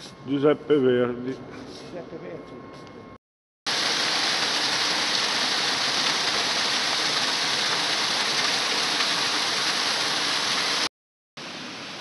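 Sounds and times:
small waterfall rushing: 3.7s - 12.0s.

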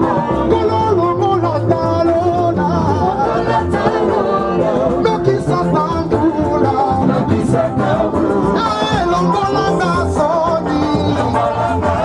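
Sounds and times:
gospel band with sung vocals: 0.0s - 12.0s.

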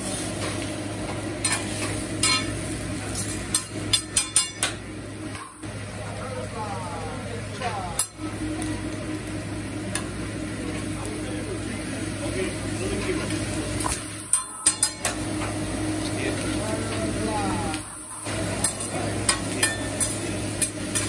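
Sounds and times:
food sizzling on a griddle: 0.0s - 21.0s.

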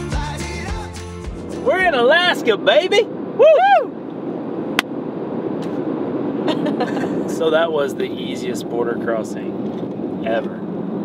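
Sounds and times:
road and engine noise: 0.0s - 11.0s
people whooping and laughing: 3.4s - 4.0s.

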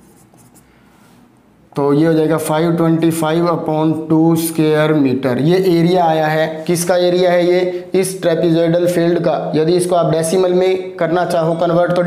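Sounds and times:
marker writing on whiteboard: 0.0s - 0.7s
man speaking: 1.7s - 12.0s.

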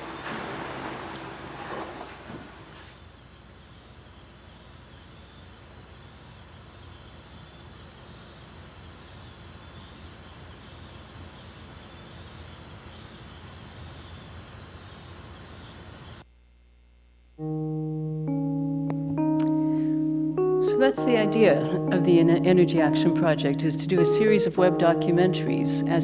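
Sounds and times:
crickets chirping: 0.0s - 16.2s, 20.4s - 26.0s.

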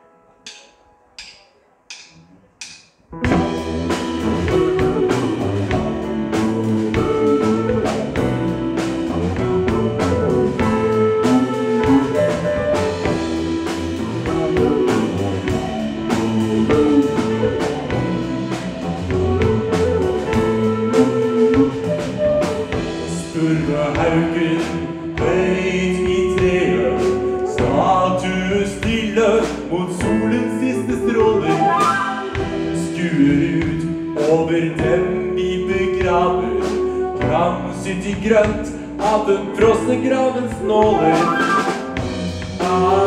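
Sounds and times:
keyboards: 0.0s - 43.0s
drum kit beat: 0.5s - 43.0s
electric bass: 3.2s - 43.0s
flute melody: 3.2s - 43.0s.

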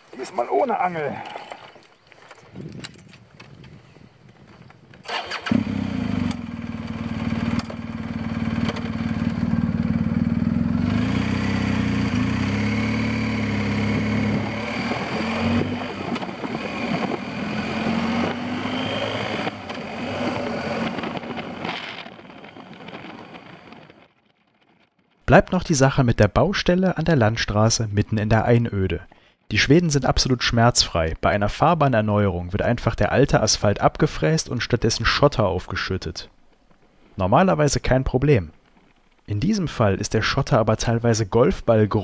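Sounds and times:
engine starter clicks: 5.0s - 7.8s
motorcycle engine accelerating: 5.0s - 24.6s.

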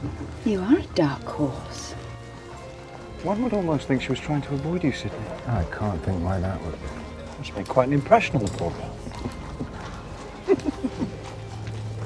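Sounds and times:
horse hooves clip-clopping on street: 0.0s - 12.0s.

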